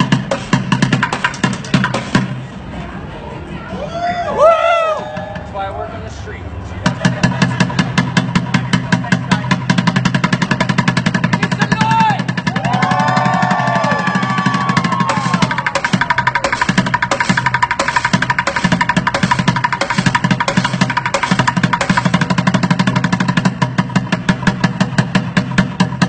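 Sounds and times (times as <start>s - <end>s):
voices calling out: 2.4s - 9.8s, 11.3s - 17.6s.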